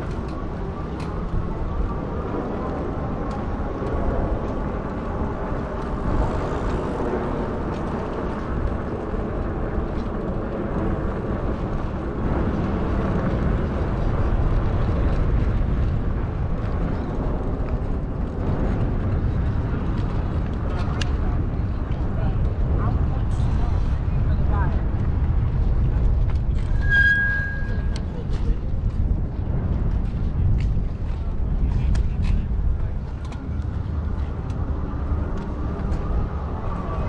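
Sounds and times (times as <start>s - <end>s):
bike tyres rolling on concrete: 0.0s - 37.0s
wind on microphone: 0.0s - 37.0s.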